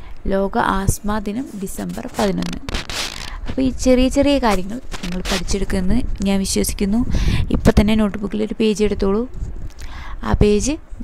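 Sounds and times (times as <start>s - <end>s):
woman speaking: 0.2s - 9.3s, 10.2s - 10.8s
hissing rustling noise: 1.3s - 6.1s.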